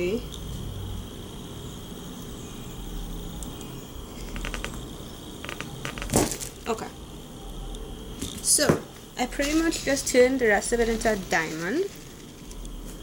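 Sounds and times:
wax cracking under blade: 0:04.2 - 0:04.8, 0:05.4 - 0:06.6.

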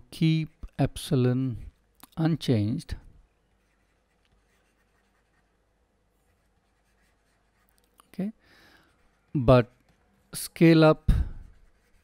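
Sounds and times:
stylus scratching on tablet: 0:03.4 - 0:07.9, 0:08.8 - 0:12.0.

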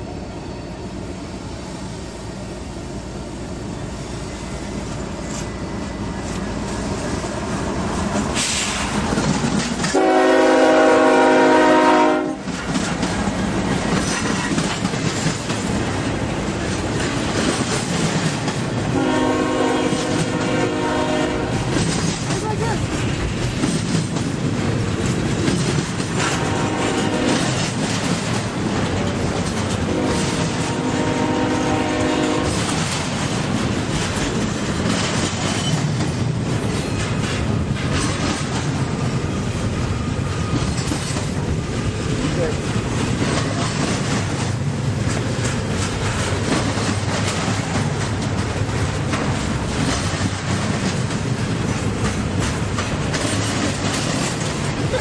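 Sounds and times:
train wheels clattering: 0:04.9 - 0:55.0
locomotive horn blasts: 0:09.9 - 0:12.4, 0:19.0 - 0:21.6, 0:26.3 - 0:27.5, 0:29.9 - 0:32.6.

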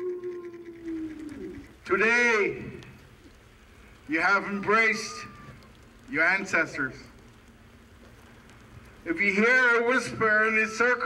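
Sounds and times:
light rain hiss: 0:00.1 - 0:11.0.

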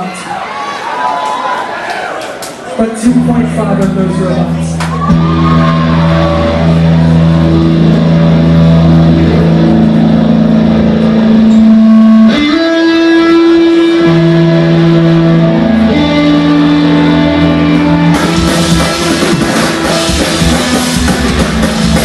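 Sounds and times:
electric guitars sustained notes: 0:03.0 - 0:22.0.

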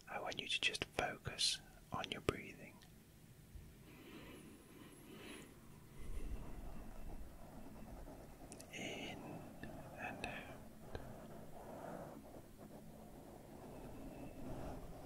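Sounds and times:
low rumble: 0:05.7 - 0:08.4
brush on microphone windscreen: 0:06.0 - 0:15.0.

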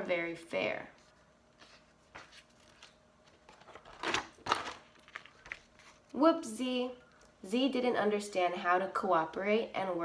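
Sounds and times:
paper page rustling: 0:01.0 - 0:06.2.

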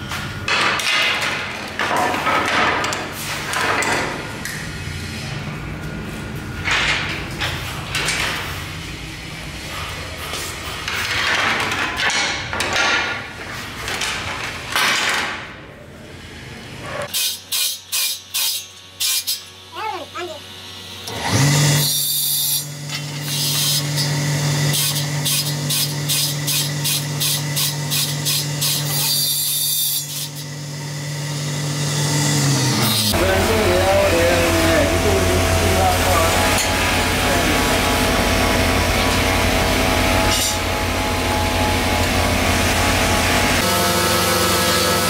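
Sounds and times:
circular saw cutting antler: 0:17.0 - 0:20.4, 0:21.0 - 0:30.6
low machine hum: 0:30.4 - 0:45.0.

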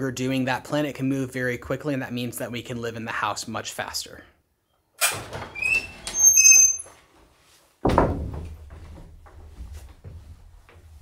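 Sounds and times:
wooden door creaking open: 0:05.0 - 0:07.0, 0:07.8 - 0:10.1
sharp thump: 0:07.8 - 0:08.6.

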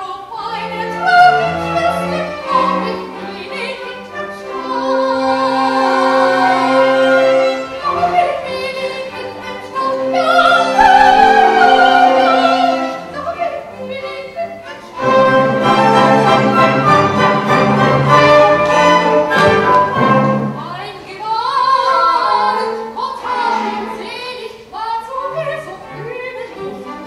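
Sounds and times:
operatic solo singing: 0:00.3 - 0:25.8
orchestra playing: 0:00.4 - 0:21.0, 0:21.8 - 0:24.5.

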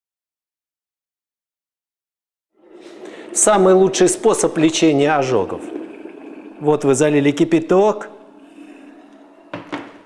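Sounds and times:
water trickling into a cup: 0:02.6 - 0:10.0.

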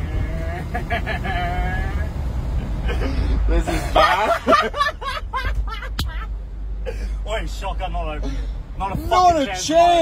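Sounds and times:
road noise: 0:00.0 - 0:10.0
truck engine rumble: 0:00.0 - 0:10.0.

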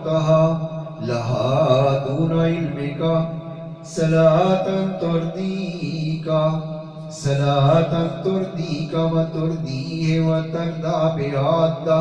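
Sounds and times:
man chanting into a microphone: 0:00.0 - 0:12.0.

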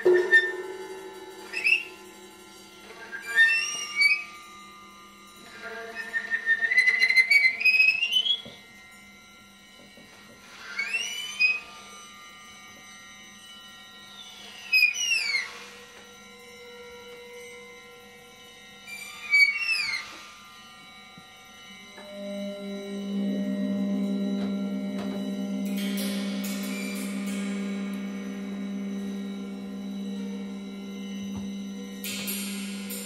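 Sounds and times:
faint low drone: 0:00.0 - 0:05.6, 0:21.8 - 0:33.0
percussion: 0:00.0 - 0:14.6, 0:15.3 - 0:33.0
soprano saxophone sliding pitches: 0:22.0 - 0:33.0.

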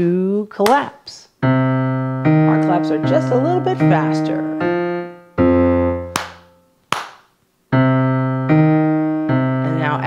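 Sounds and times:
keyboard walking bass line: 0:01.4 - 0:06.6
hand claps: 0:06.1 - 0:07.3.

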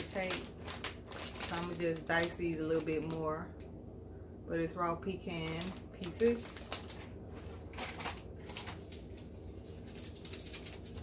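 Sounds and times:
low steady hum: 0:00.0 - 0:11.0
packaging rustles and taps: 0:05.4 - 0:09.2.

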